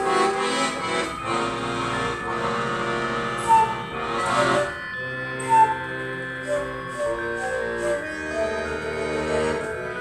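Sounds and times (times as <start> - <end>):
bamboo flute playing: 0.0 - 0.7, 3.4 - 10.0
button accordion chords: 0.0 - 10.0.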